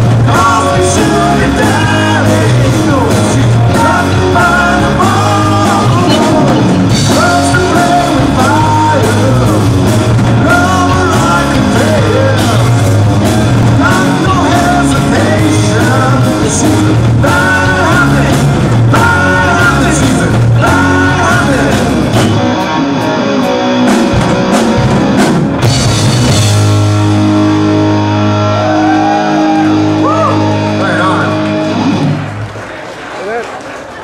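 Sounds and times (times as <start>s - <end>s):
person singing: 0.0s - 22.1s
drum hits: 0.0s - 22.7s
live rock band playing: 0.0s - 33.2s.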